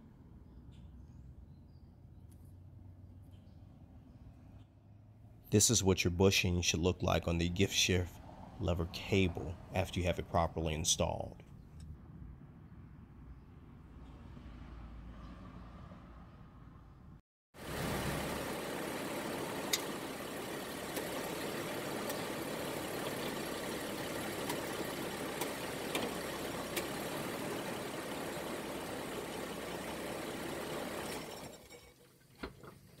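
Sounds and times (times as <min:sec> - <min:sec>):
vehicle engine idling: 0:17.6 - 0:31.5.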